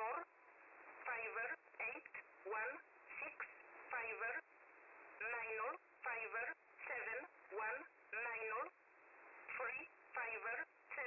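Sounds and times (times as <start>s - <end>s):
radio hiss: 0.0s - 11.0s.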